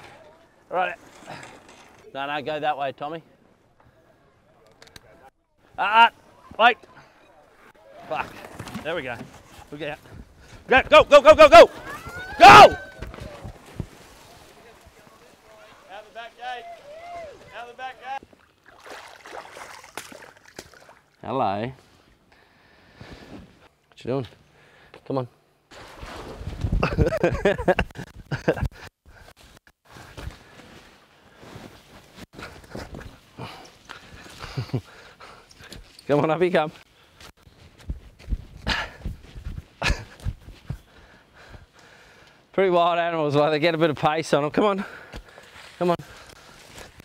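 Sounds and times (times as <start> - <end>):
water splashing and churning: 18.4 - 21.2.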